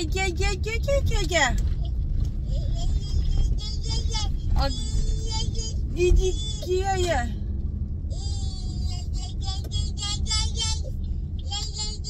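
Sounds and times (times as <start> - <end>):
car cabin hum: 0.0 - 12.0.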